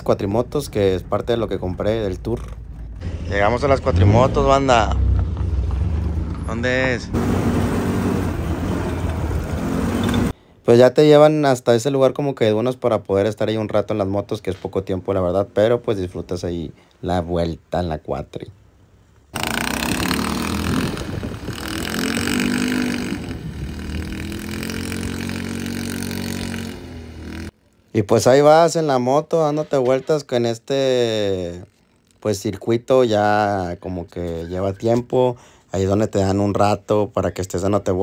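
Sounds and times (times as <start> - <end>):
quad bike engine running: 7.2 - 10.3, 19.4 - 27.5
wind rushing on microphone: 19.9 - 24.3.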